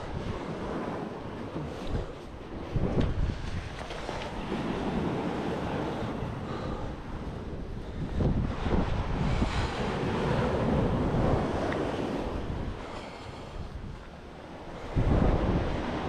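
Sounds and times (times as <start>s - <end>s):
sea waves on shore: 0.0s - 16.0s
wind buffeting microphone: 0.0s - 16.0s.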